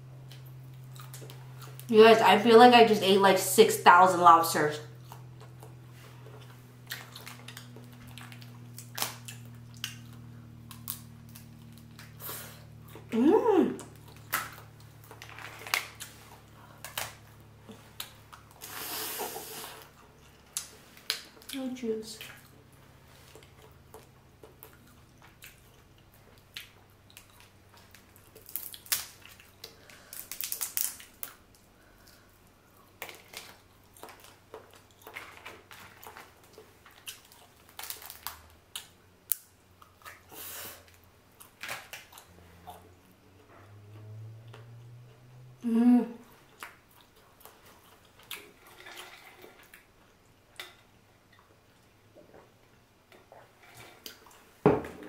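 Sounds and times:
faint low hum: 0.0 - 55.0
shells crackling and snapping: 6.9 - 12.2, 13.8 - 18.2, 26.6 - 32.1, 32.9 - 40.2
wet sucking and chewing: 17.6 - 21.6.

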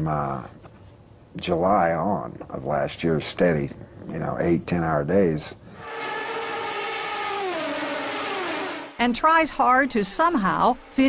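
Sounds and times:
race car engine: 5.8 - 9.0.

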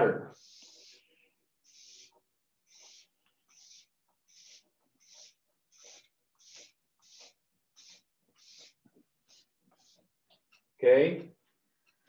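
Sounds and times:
marker pen scratching on paper: 0.3 - 10.8.

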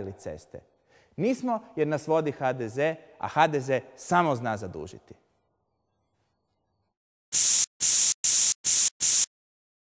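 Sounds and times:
spray can hissing bursts: 7.3 - 9.3.

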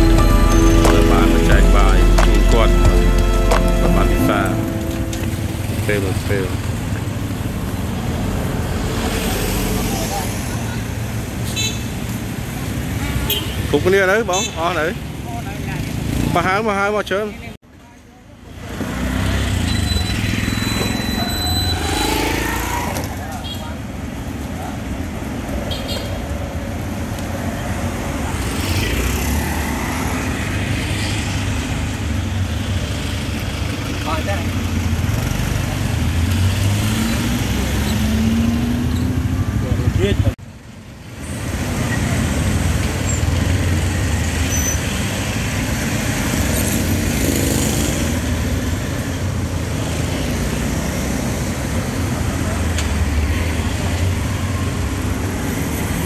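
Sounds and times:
people talking: 0.0 - 5.2, 5.8 - 6.6
vehicle engines passing: 0.0 - 16.6, 18.5 - 40.4, 41.1 - 56.0.

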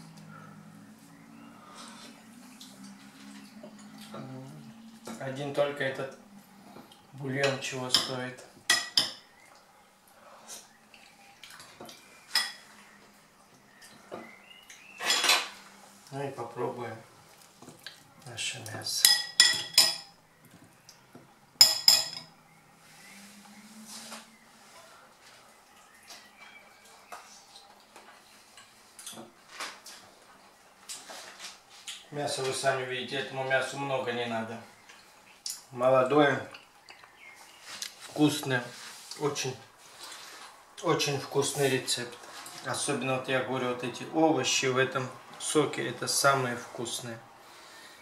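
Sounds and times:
metal spoon clinking in ceramic pot: 21.6 - 22.3.

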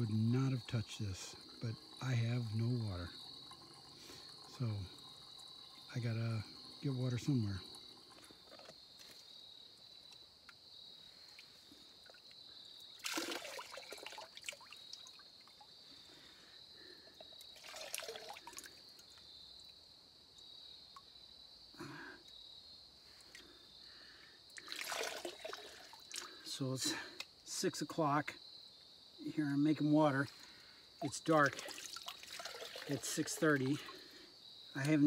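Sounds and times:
water trickling into a bag: 0.0 - 10.3, 11.3 - 19.7, 24.6 - 27.1, 29.8 - 34.2
high insect drone: 0.0 - 35.0.

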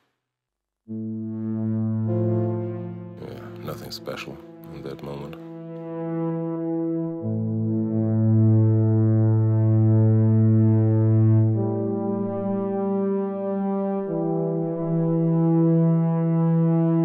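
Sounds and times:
synthesizer pad chords: 0.9 - 17.0.

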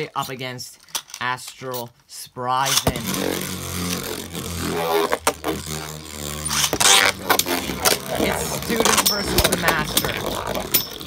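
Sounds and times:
spinning tops whirring: 2.8 - 11.0
loud scraping burst: 2.9 - 11.0
tops clacking: 6.4 - 11.0.

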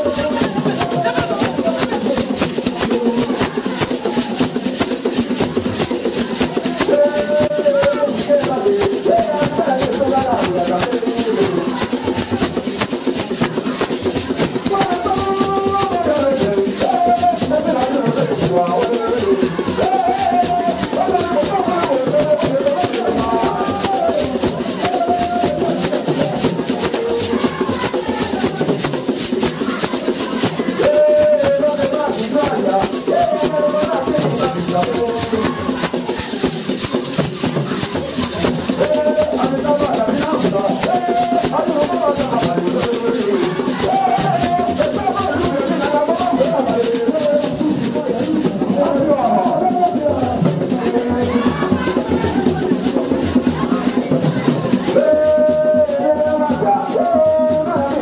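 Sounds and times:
fast shaker rattle: 0.0 - 58.0
group of voices singing: 0.0 - 58.0.

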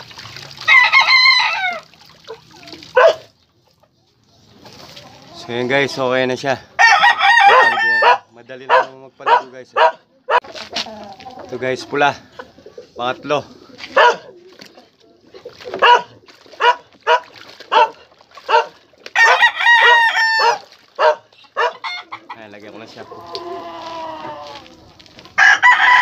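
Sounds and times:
roosters clucking: 0.0 - 26.0
rooster crowing: 0.7 - 1.9, 6.8 - 8.2, 19.2 - 22.2, 23.2 - 24.7, 25.4 - 26.0.

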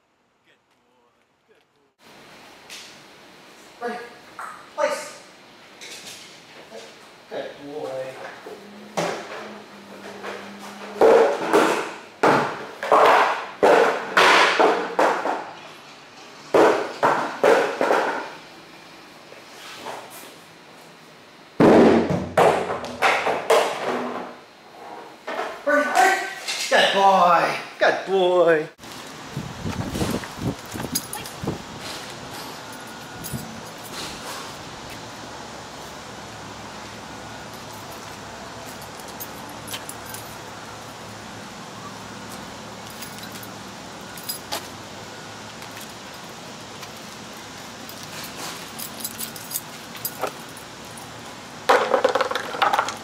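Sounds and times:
steady low hum: 28.6 - 51.7
dog collar jingling: 30.6 - 31.5, 42.9 - 43.6, 47.9 - 51.2
barrel bouncing and rolling: 51.7 - 53.0.

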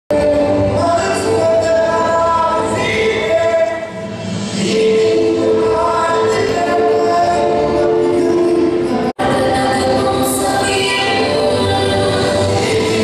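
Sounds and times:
group of voices singing: 0.1 - 13.0.

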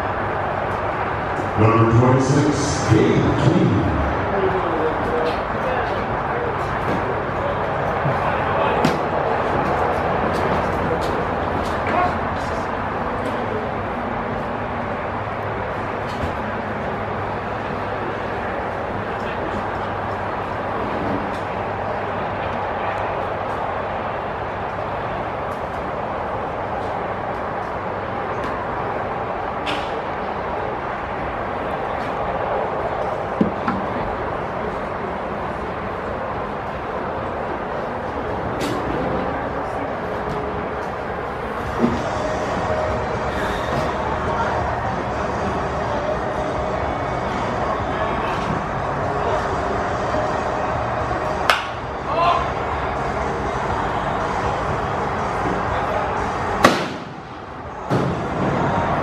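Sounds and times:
spectators chattering: 0.0 - 59.0.

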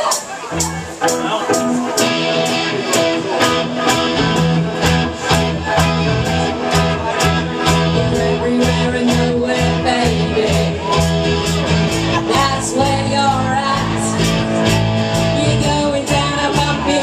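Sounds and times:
bass guitar: 0.0 - 17.0
drums keeping a beat: 0.0 - 17.0
electric guitar: 0.0 - 17.0.

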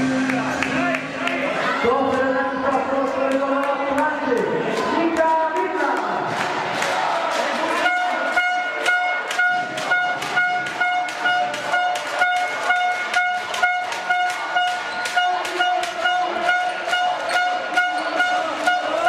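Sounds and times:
sharp claps or drum beats: 2.1 - 19.0
horn short blasts: 7.8 - 19.0.

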